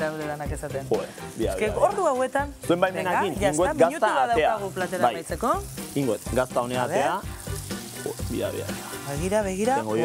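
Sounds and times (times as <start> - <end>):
cheese sizzling in a frying pan: 0.0 - 10.0.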